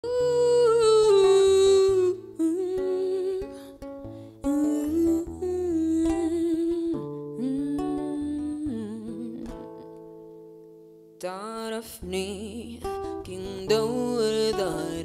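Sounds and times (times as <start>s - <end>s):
plucked acoustic guitar: 0.0s - 15.0s
woman singing wordless melody: 0.0s - 15.0s.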